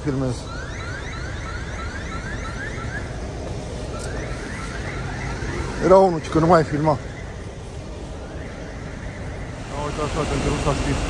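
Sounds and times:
electronic alarm rising tones: 0.0s - 11.0s
low street rumble: 0.0s - 11.0s.

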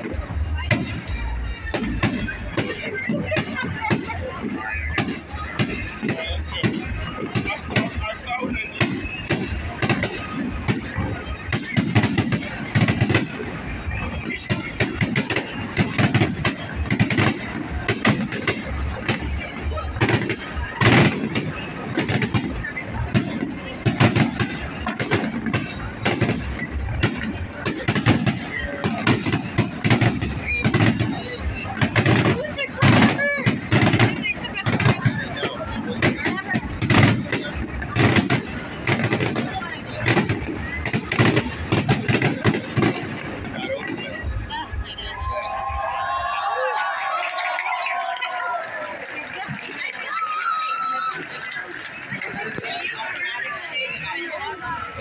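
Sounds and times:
loud fireworks booms: 0.0s - 46.1s
fireworks bangs and crackles: 0.0s - 55.0s.

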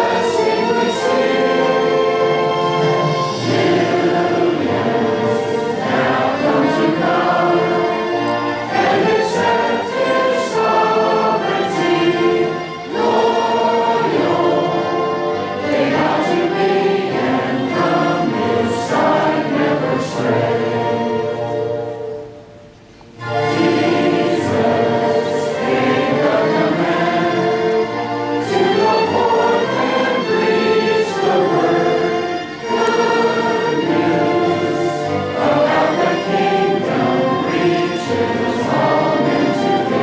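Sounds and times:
congregation singing a hymn: 0.0s - 40.0s
orchestral accompaniment: 0.0s - 40.0s.

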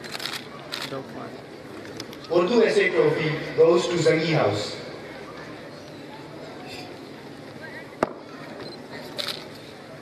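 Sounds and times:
murmur of large crowd: 0.0s - 10.0s.

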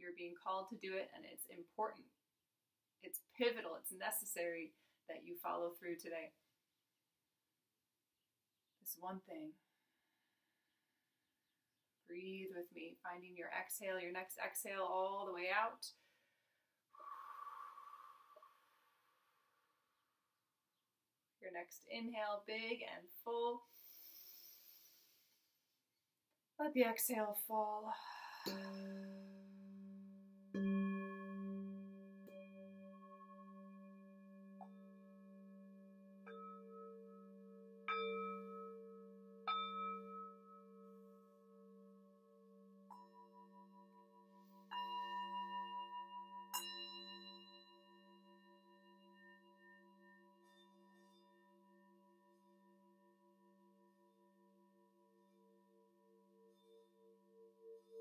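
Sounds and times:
singing bowl struck and ringing: 28.4s - 54.4s, 55.2s - 58.0s.

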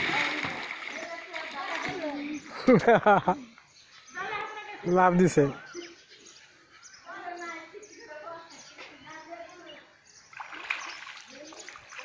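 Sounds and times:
child splashing in water: 0.0s - 2.7s, 10.4s - 12.0s.

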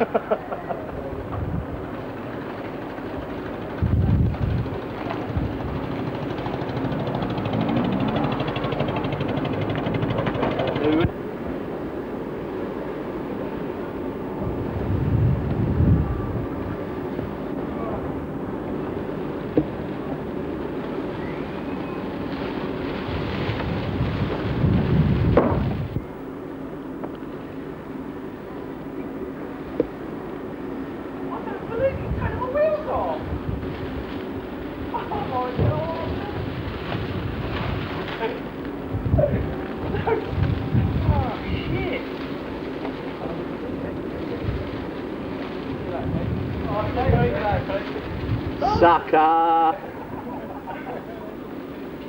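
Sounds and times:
wind rumbling on microphone: 1.0s - 2.4s, 3.2s - 11.2s, 14.3s - 18.2s, 21.1s - 26.2s, 31.7s - 38.2s, 38.8s - 42.2s, 43.9s - 49.1s.

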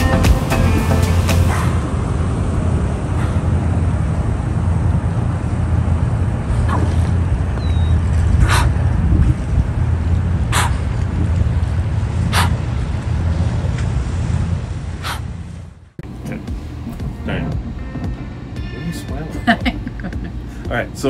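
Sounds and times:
steady low rumble: 0.0s - 21.0s
dolphin breath puffs: 3.2s - 3.6s, 8.4s - 8.8s, 10.5s - 11.0s, 12.2s - 12.6s, 15.0s - 15.4s.

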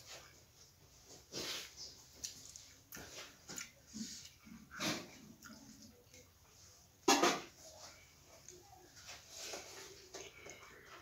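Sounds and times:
man chewing food: 0.0s - 6.9s.

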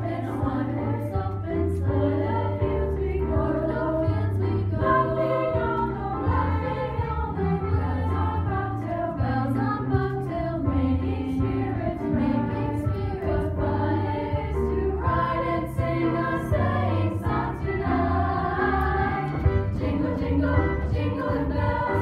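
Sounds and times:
girls' choir singing: 0.0s - 22.0s.

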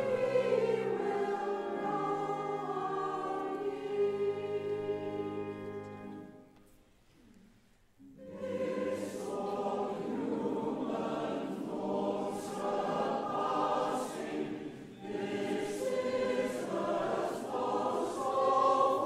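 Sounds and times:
mixed choir singing: 0.0s - 6.3s, 8.1s - 19.0s.

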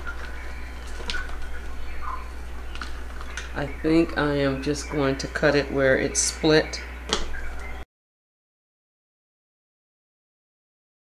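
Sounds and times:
leaves rustling and ticking: 0.0s - 4.3s
low hum: 0.0s - 7.8s.

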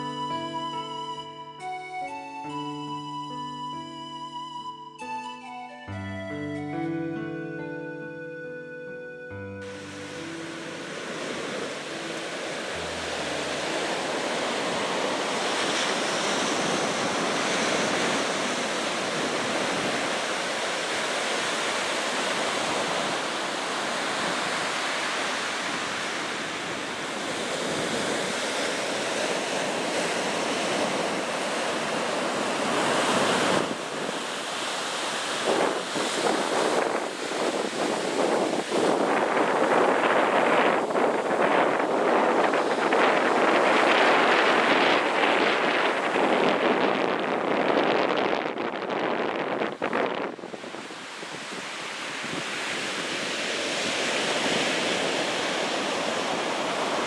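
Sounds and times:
surf breaking on beach: 9.6s - 57.0s
wind buffeting microphone: 10.5s - 57.0s.

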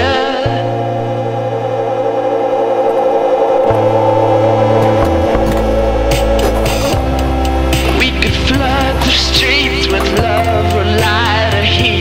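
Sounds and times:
background music with bass line: 3.7s - 12.0s.

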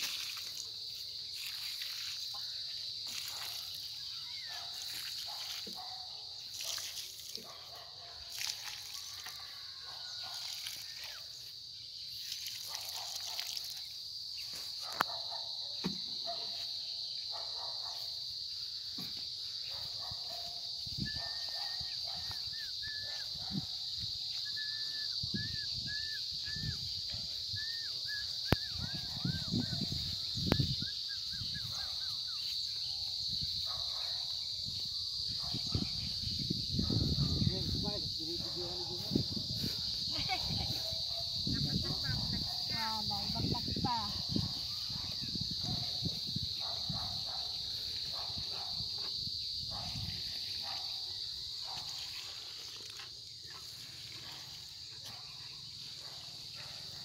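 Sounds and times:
high-pitched insect drone: 0.0s - 57.0s.

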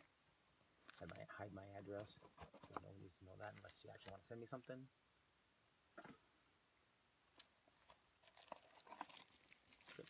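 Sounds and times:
bubble wrap crinkling: 7.8s - 10.0s.

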